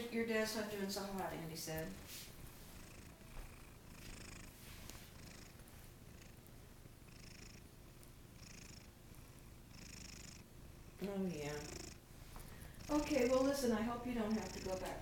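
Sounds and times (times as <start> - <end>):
cat purring: 0.6 - 15.0.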